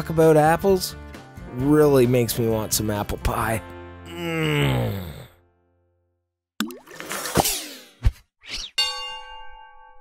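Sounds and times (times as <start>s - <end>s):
background music: 0.0s - 6.0s
person humming: 4.1s - 5.3s.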